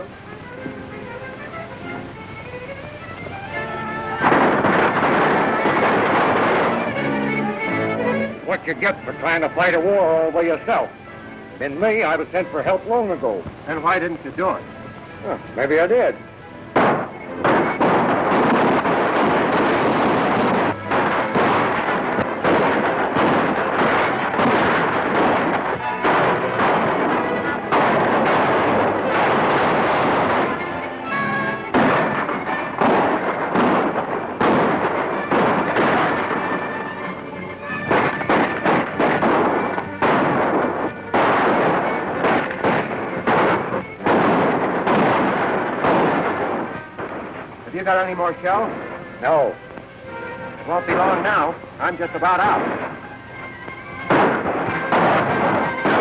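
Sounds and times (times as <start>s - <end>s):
gunshots: 3.7s - 10.9s, 16.7s - 49.6s, 50.7s - 56.0s
galloping horses: 16.8s - 30.8s, 31.7s - 50.0s, 50.7s - 56.0s.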